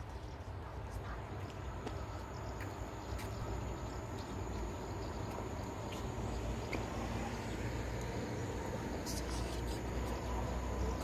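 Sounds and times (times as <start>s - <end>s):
faint distant voices: 0.0s - 11.0s
faint high whine: 0.0s - 11.0s
steady low rumble: 0.0s - 11.0s.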